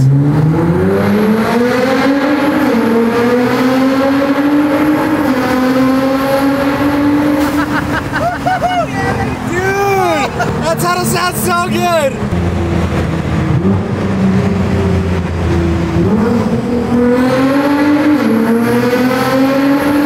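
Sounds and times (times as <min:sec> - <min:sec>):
car engine accelerating hard: 0:00.0 - 0:20.0
voices: 0:08.2 - 0:12.2.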